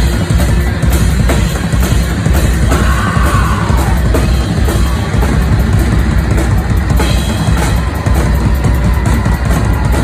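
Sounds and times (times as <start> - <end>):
drum kit: 0.0 - 10.0.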